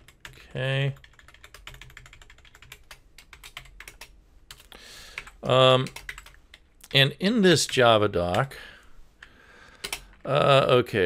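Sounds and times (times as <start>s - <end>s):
computer keyboard typing: 0.0s - 6.6s, 9.8s - 10.3s.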